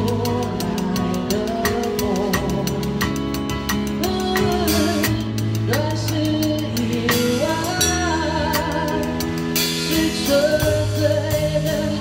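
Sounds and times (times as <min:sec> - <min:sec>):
bass line: 0:00.0 - 0:12.0
drum kit and cymbals: 0:00.0 - 0:12.0
live band playing pop ballad: 0:00.0 - 0:12.0
person singing: 0:00.0 - 0:12.0.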